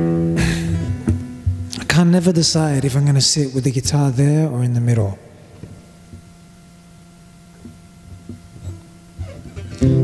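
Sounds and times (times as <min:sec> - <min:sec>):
steady low hum: 0:00.0 - 0:10.0
guitar handling knocks: 0:00.8 - 0:01.8, 0:07.6 - 0:10.0.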